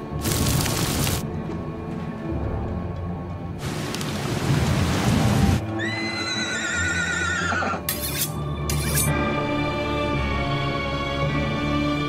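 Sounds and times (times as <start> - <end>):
film trailer music: 0.0 - 12.0.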